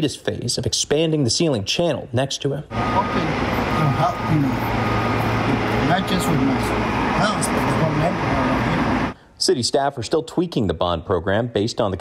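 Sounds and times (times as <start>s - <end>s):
man talking: 0.0s - 4.7s, 5.4s - 12.0s
loud steady background noise: 2.7s - 9.2s.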